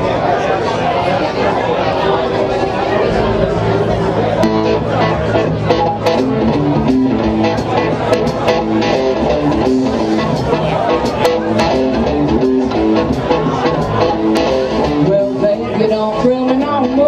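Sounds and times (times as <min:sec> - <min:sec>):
bass guitar: 0:01.2 - 0:17.0
electric guitar riff: 0:01.8 - 0:17.0
drums and cymbal hits: 0:03.0 - 0:15.3.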